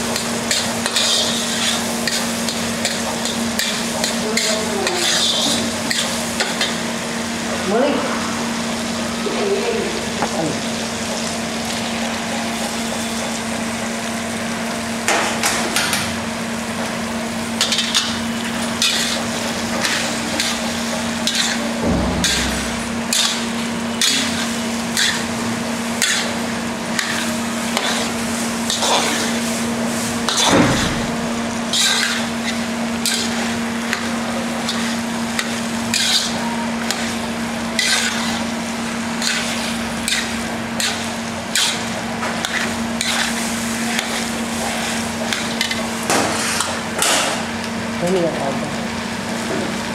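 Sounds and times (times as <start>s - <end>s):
food sizzling: 0.0s - 49.9s
metal spatula scraping a pan: 0.1s - 6.7s, 17.6s - 25.3s, 26.0s - 26.4s, 27.0s - 29.4s, 31.7s - 46.7s.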